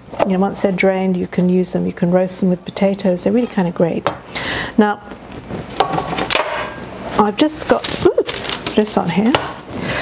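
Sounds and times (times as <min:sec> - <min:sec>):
utensils rustling: 0:07.6 - 0:09.1.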